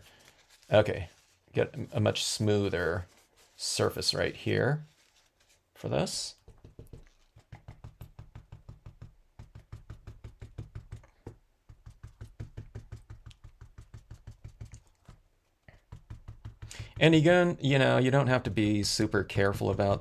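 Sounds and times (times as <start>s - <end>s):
paper towel tapping on card: 6.3s - 17.3s.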